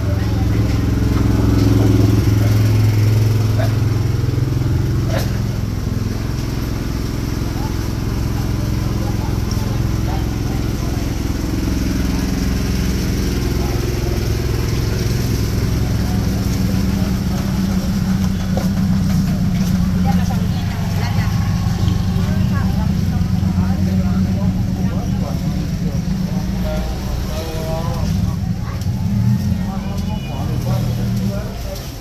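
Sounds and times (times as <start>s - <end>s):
people chattering: 0.0s - 32.0s
vehicle engine running: 0.0s - 32.0s.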